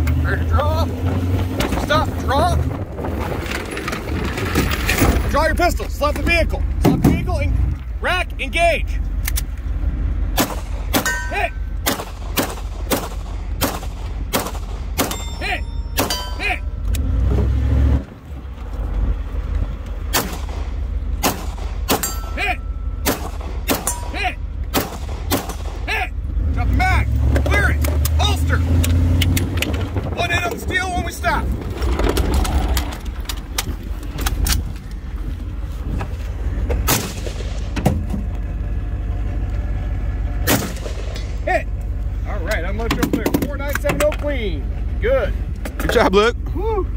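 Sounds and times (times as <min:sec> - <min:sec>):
vehicle low rumble: 0:00.0 - 0:46.9
pistol shots: 0:10.4 - 0:11.2, 0:11.8 - 0:15.3, 0:20.1 - 0:22.1, 0:23.0 - 0:23.9, 0:24.7 - 0:25.8.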